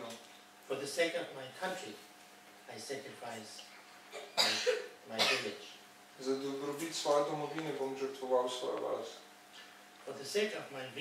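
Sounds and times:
person coughing: 4.1 - 5.6.

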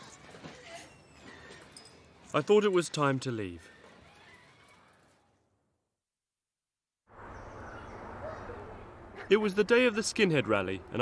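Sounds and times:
outdoor ambience: 0.0 - 5.9, 7.1 - 11.0.

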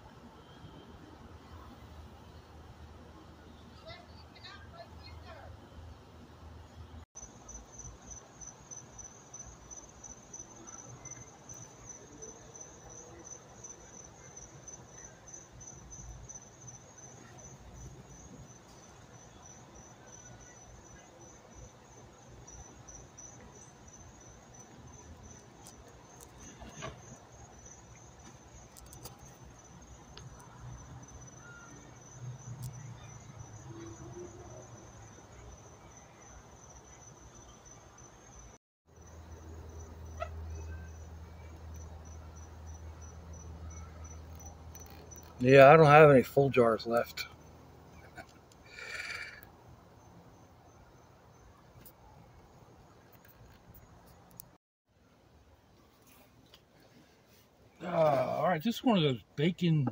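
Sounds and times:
crickets chirping: 0.0 - 54.6, 57.8 - 59.9.

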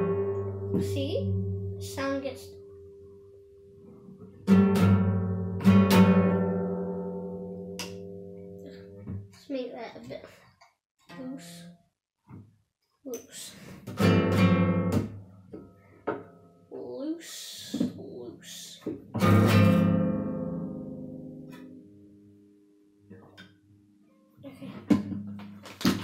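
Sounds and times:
acoustic guitar strummed: 0.0 - 9.3, 13.9 - 16.6, 19.1 - 22.6.

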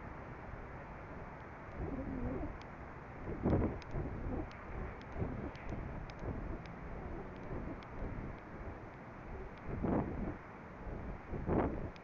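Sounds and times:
faint ticks: 1.3 - 2.8, 3.4 - 10.0
wind rushing over microphone: 1.7 - 2.6, 3.2 - 12.0
low wavering hoot-like tones: 1.8 - 2.6, 6.3 - 10.3.

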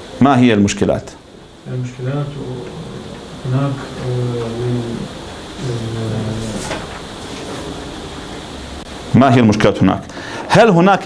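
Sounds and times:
man holding drawn-out vowels: 1.6 - 7.0.

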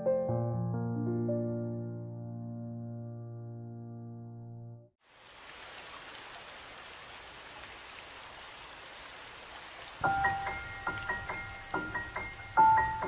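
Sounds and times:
solo piano notes: 0.0 - 4.9, 10.0 - 13.0
rain-like patter: 5.0 - 13.0.

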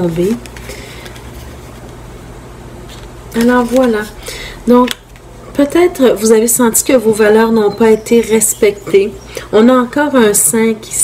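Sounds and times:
low background hum: 0.0 - 11.0.

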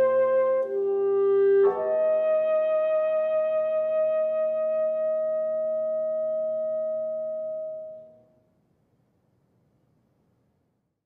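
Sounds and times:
piano chord: 0.0 - 8.2.

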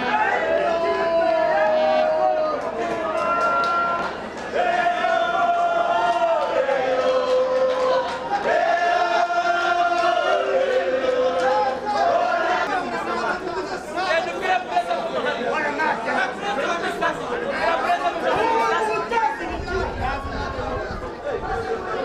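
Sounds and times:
crowd chatter: 0.0 - 22.0.

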